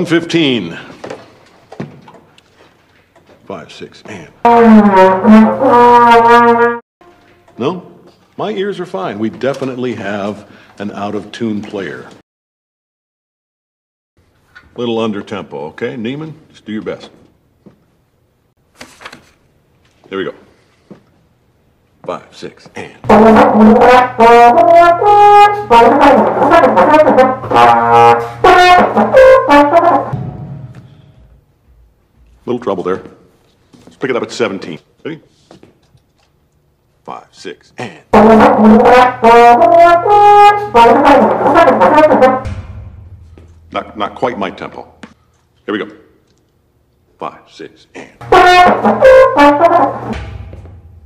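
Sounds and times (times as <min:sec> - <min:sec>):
trombone playing jazz: 0:04.4 - 0:07.2, 0:23.0 - 0:30.4, 0:38.0 - 0:44.7, 0:48.2 - 0:51.0.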